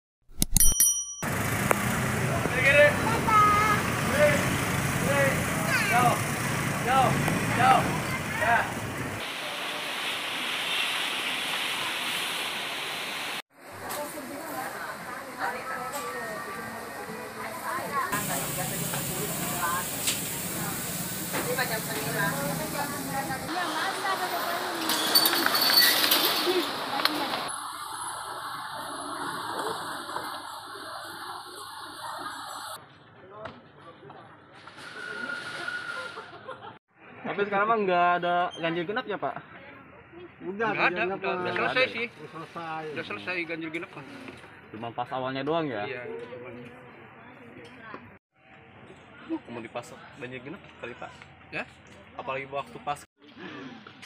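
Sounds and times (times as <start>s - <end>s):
sound-effect clicks: 0.3s - 0.8s
bright bell-like ding: 0.4s - 1.4s
street traffic: 1.2s - 33.2s
market hall ambient noise: 1.3s - 10.2s, 13.6s - 54.0s
faint indistinct voices: 13.6s - 27.8s.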